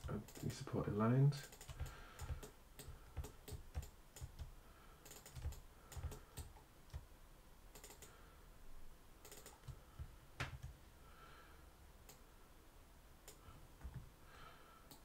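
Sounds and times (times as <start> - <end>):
computer keyboard and mouse clicks: 0.0 - 0.6, 1.4 - 7.1, 7.7 - 8.2, 9.2 - 10.8.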